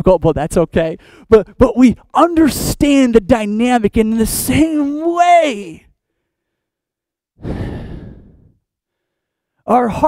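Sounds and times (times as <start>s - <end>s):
man sighing: 7.4s - 8.6s.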